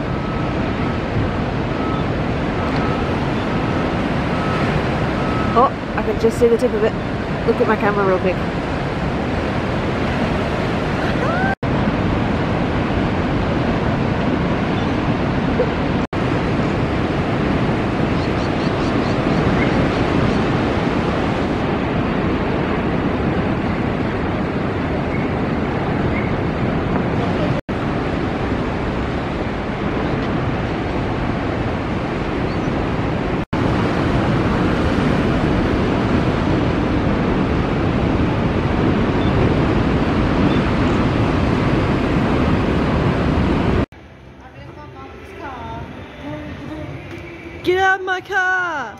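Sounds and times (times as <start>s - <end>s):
ocean surf breaking: 0.0s - 47.8s
wind on microphone: 0.0s - 47.9s.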